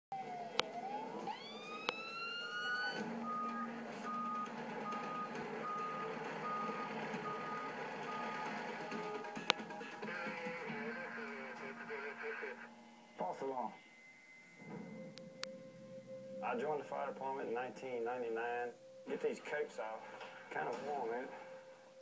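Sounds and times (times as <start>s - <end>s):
fire truck siren: 0.1s - 9.4s
steady beeping: 1.9s - 19.4s
truck engine running: 3.0s - 10.0s.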